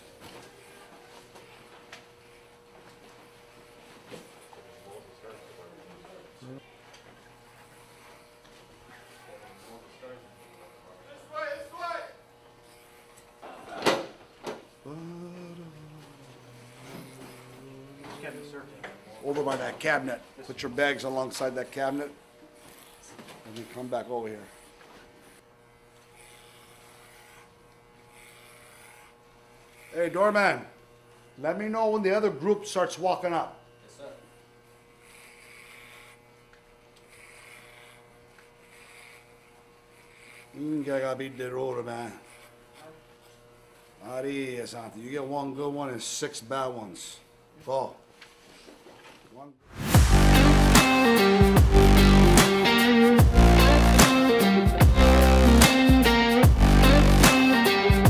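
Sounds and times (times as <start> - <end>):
electric hair clippers buzzing: 0.0 - 48.2, 49.8 - 58.0.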